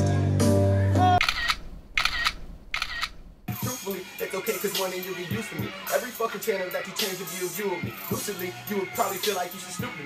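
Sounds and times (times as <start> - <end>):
music: 0.0 - 1.2, 3.5 - 10.0
short sharp clicks: 1.2 - 3.3.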